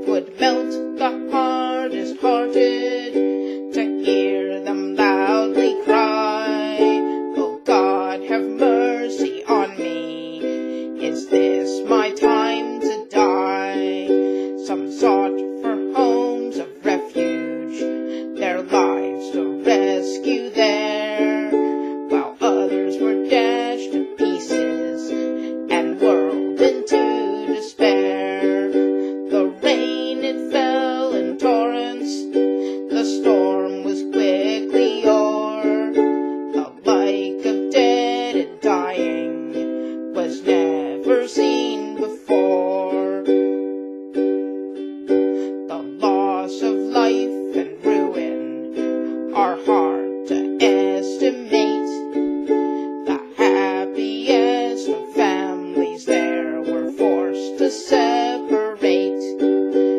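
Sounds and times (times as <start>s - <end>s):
woman singing folk ballad: 0.0s - 43.6s, 44.2s - 59.9s
ukulele strumming chords: 0.0s - 59.9s.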